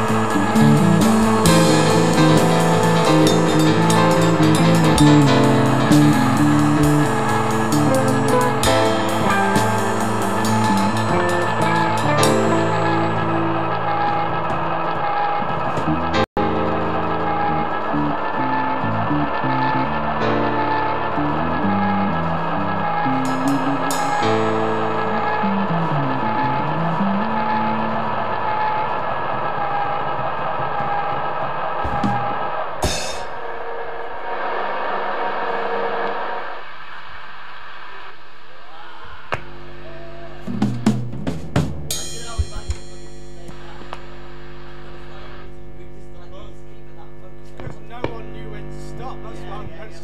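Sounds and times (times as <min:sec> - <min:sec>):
rock band playing: 0:00.0 - 0:28.7, 0:31.9 - 0:36.6, 0:40.3 - 0:43.5
electric guitars: 0:00.0 - 0:31.0, 0:31.8 - 0:38.9.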